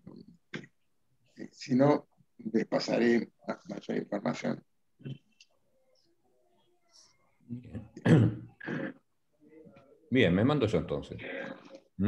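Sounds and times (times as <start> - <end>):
person clearing throat: 7.9 - 9.1.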